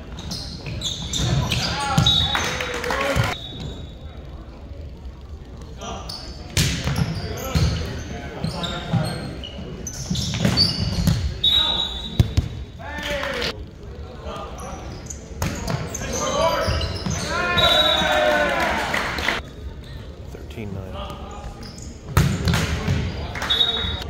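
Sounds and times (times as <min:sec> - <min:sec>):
players shouting: 0:15.9 - 0:19.4
volleyball being hit: 0:22.2 - 0:23.1.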